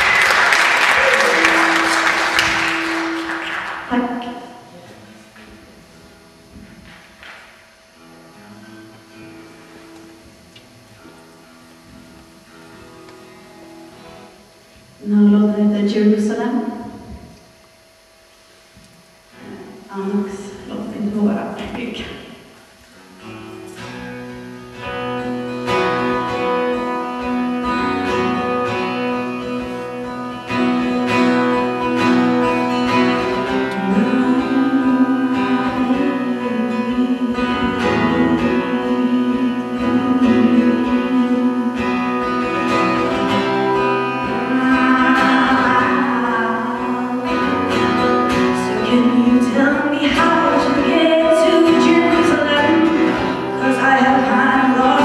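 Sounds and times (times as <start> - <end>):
acoustic guitar playing: 0.0 - 55.0
woman singing into microphone: 33.5 - 42.8, 43.8 - 55.0.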